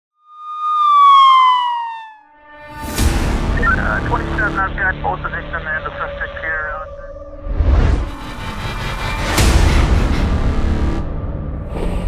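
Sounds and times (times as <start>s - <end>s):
siren-like tone sliding down: 0.2s - 2.6s.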